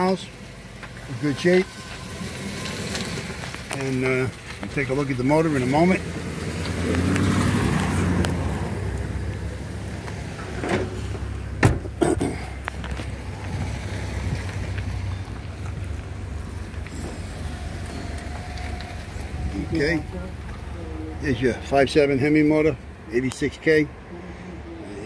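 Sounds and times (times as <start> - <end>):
motor vehicle rumble: 0.0 - 25.0
car door shutting: 10.4 - 12.2.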